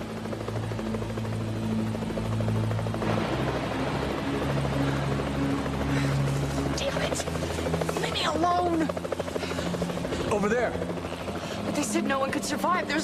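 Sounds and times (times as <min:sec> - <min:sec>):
helicopter rotor noise: 0:00.0 - 0:13.0.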